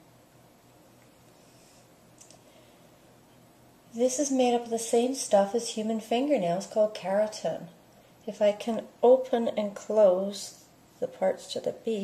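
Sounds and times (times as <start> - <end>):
faint clicks: 2.2 - 2.5.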